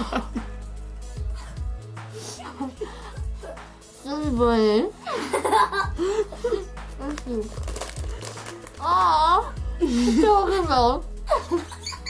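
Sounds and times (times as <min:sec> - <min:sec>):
plastic bag crinkling: 0:07.0 - 0:08.9.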